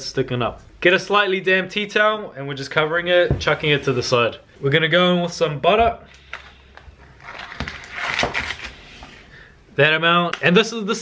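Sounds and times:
paper wrapper rustling: 0:06.3 - 0:08.8.

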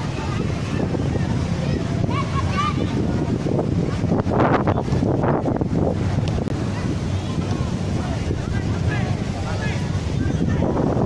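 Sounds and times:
voices shouting: 0:00.0 - 0:04.0
wind rumbling on microphone: 0:00.0 - 0:11.0.

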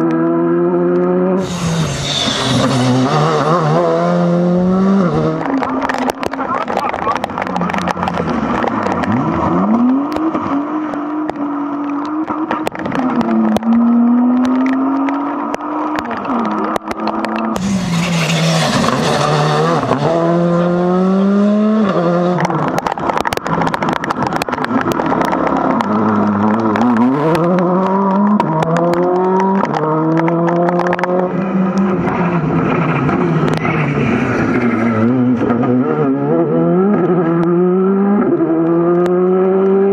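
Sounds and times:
rally cars revving past: 0:00.0 - 0:22.8, 0:25.0 - 0:39.9
sharp cracks: 0:22.3 - 0:34.8.

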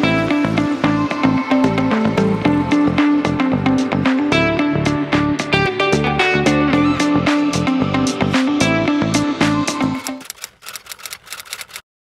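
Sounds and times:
typewriter key clicks: 0:10.0 - 0:11.8.

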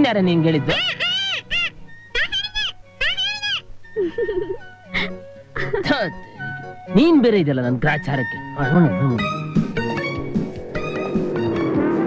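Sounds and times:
background music: 0:00.0 - 0:12.0
cat meowing: 0:00.9 - 0:03.7.

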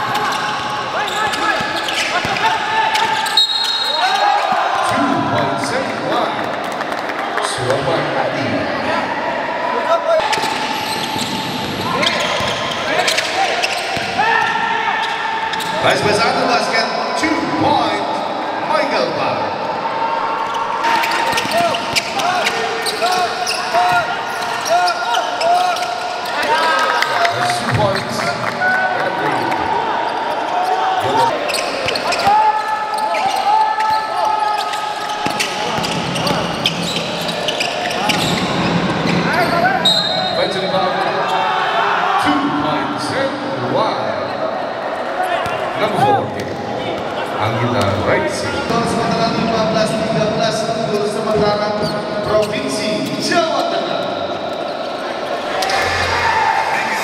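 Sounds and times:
sneakers squeaking: 0:00.0 - 0:04.9, 0:10.2 - 0:15.8, 0:20.4 - 0:26.5, 0:29.2 - 0:41.5
players' voices: 0:00.0 - 0:57.0.

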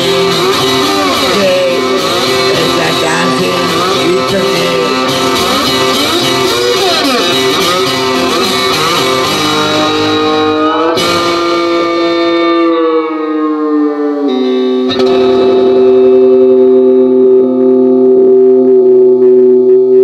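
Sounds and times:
plucked banjo notes with effects: 0:00.0 - 0:18.1.

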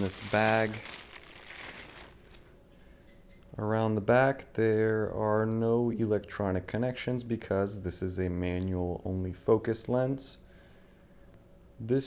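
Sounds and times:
plastic bag crinkling: 0:00.0 - 0:02.5.

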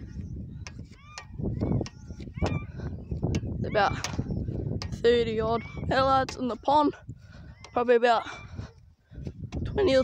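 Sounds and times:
birds calling: 0:00.0 - 0:10.0.

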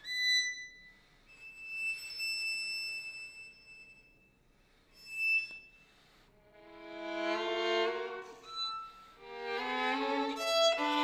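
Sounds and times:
violin playing high notes: 0:06.4 - 0:11.0.

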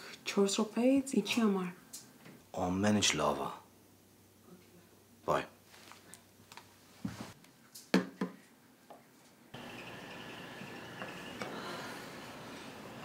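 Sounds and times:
steady hiss: 0:09.6 - 0:13.0.

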